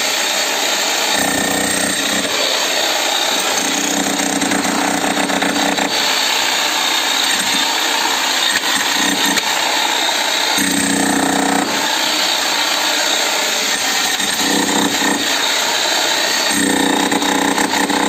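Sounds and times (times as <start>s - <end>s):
electric demolition hammer running: 0.0s - 18.0s.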